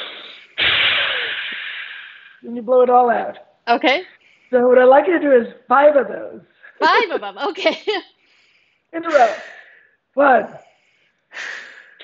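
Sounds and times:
man blowing out a long breath: 0.0 - 2.4, 10.8 - 12.0.

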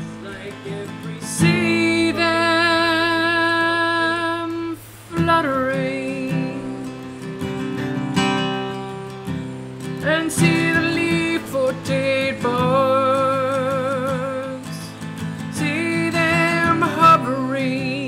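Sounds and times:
man singing: 0.0 - 7.3, 10.0 - 18.0
strummed acoustic guitar: 0.0 - 18.0.

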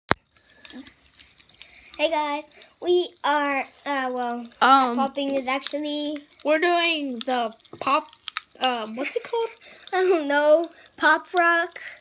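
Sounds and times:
candy crackling and fizzing in soda: 0.1 - 12.0.

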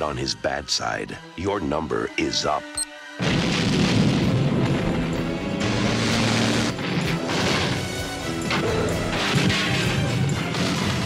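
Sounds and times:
music: 0.0 - 11.0
crashing and smashing effects: 3.2 - 11.0.

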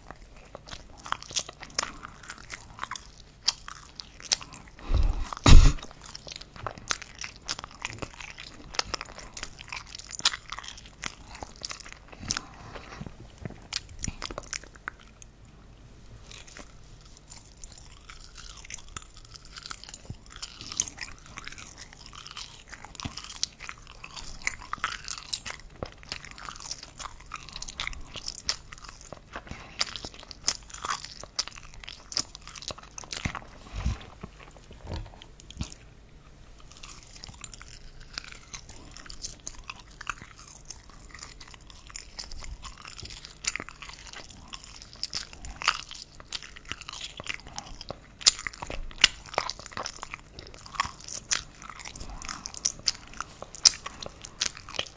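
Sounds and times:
wet chewing and mouth smacks: 0.0 - 15.5, 16.2 - 54.9.

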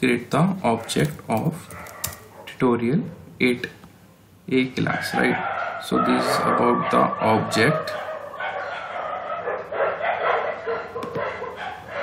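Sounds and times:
animal calls: 4.9 - 12.0.

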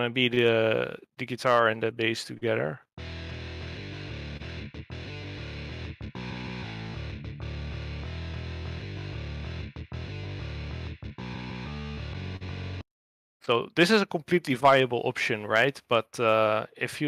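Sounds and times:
bass guitar: 3.0 - 12.8
distorted rhythm guitar riff: 3.0 - 12.8.

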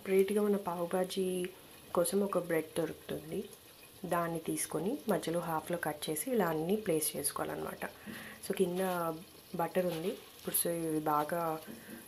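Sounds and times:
person talking: 0.0 - 11.7.

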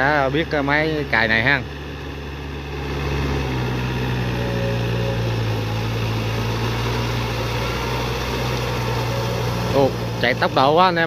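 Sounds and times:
tractor diesel engine under load: 0.0 - 11.0.

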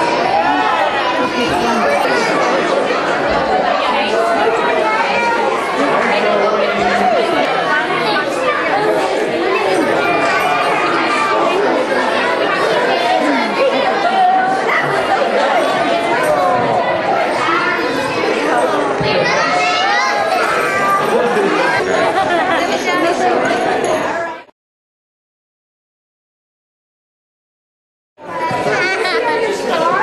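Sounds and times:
many voices chattering: 0.0 - 24.5, 28.2 - 30.0.

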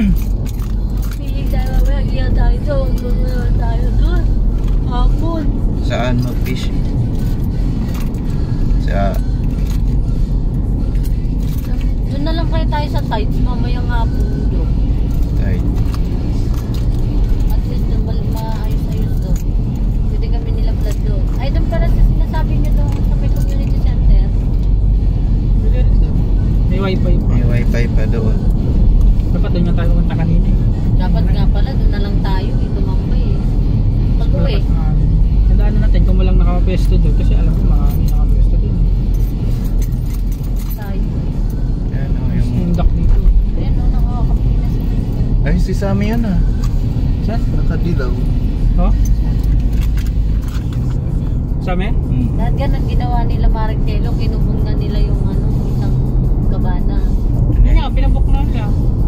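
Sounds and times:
car engine and tyre noise: 0.0 - 59.0.

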